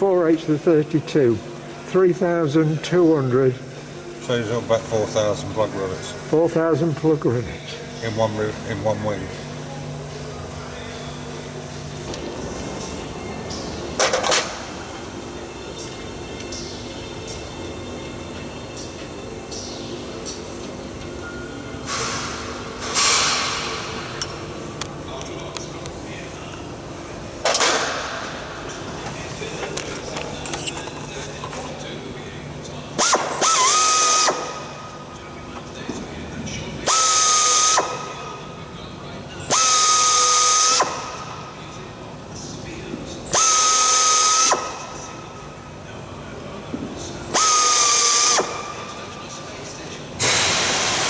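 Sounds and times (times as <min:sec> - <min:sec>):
pneumatic drill whine: 0:33.0 - 0:34.7, 0:36.9 - 0:38.1, 0:39.5 - 0:41.2, 0:43.3 - 0:44.9, 0:47.3 - 0:48.8, 0:50.2 - 0:51.0
compressed air hiss: 0:50.2 - 0:51.0.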